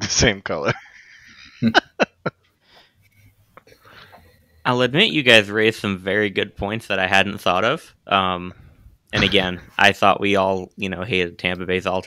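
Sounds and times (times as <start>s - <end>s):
man laughing: 0.0s - 2.4s, 9.2s - 9.8s.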